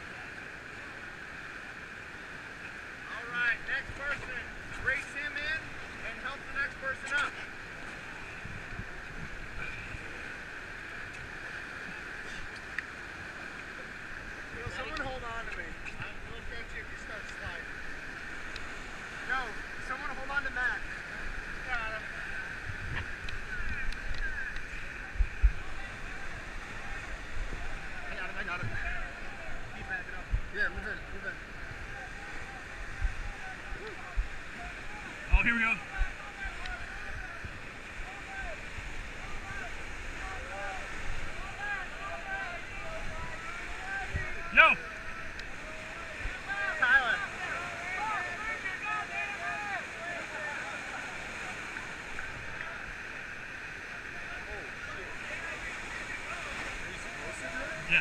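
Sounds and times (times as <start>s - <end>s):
whitewater rapids rushing: 0.0s - 58.0s
chatter of many people: 13.6s - 58.0s.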